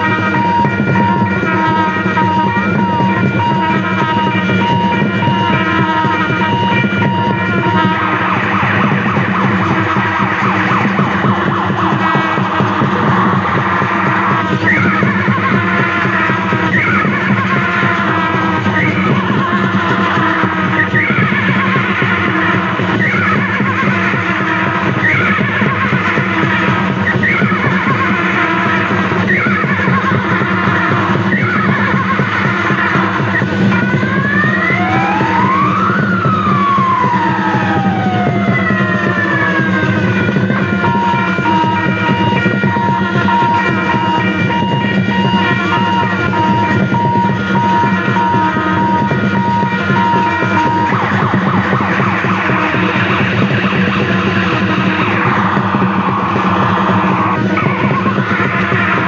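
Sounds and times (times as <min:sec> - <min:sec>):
loud music: 0:00.0 - 0:59.0
siren-like sweeping tones: 0:00.0 - 0:59.0.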